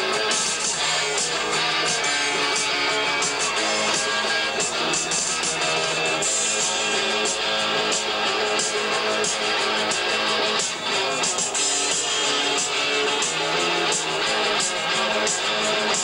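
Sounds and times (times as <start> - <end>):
bass guitar: 0.0 - 16.0
drums: 0.0 - 16.0
electric guitars: 0.0 - 16.0.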